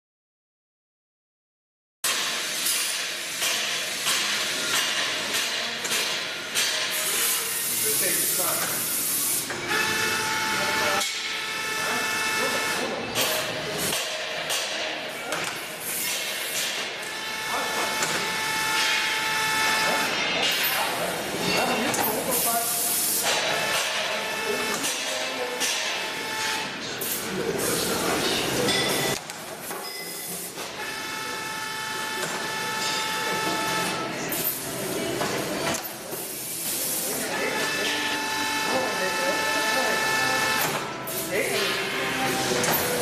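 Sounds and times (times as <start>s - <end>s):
machine multi-tone whine: 2.1s - 29.2s, 29.8s - 43.0s
machine hissing: 2.2s - 28.6s, 30.0s - 43.0s.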